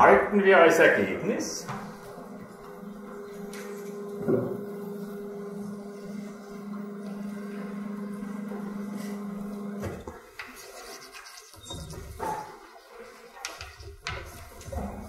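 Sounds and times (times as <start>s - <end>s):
electric motor humming: 0.8s - 10.7s.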